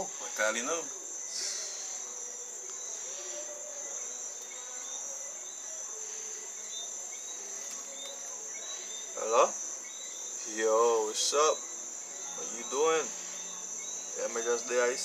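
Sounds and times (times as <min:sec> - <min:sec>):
crickets chirring: 0:00.0 - 0:15.0.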